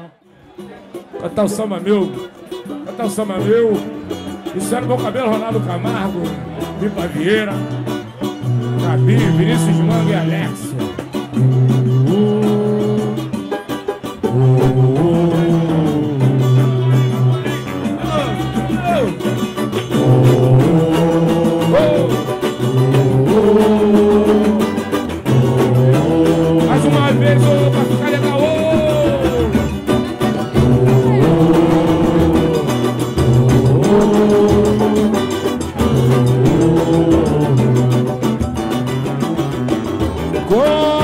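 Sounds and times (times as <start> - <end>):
tamborim hand percussion: 3.9 - 41.0
samba band playing: 8.5 - 41.0
people singing: 11.5 - 13.4, 14.2 - 38.3.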